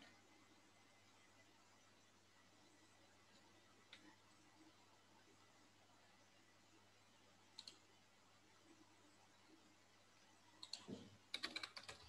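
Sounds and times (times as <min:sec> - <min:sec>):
faint computer clicks: 0:07.5 - 0:07.9, 0:10.6 - 0:12.0.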